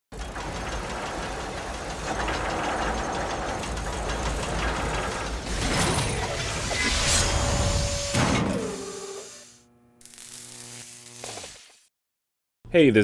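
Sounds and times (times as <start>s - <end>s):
gears clattering and ratcheting: 0.1s - 6.7s.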